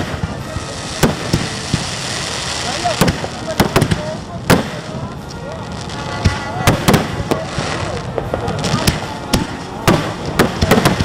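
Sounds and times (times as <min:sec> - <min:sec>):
fireworks bangs: 0:00.0 - 0:11.0
fireworks crackling: 0:00.0 - 0:11.0.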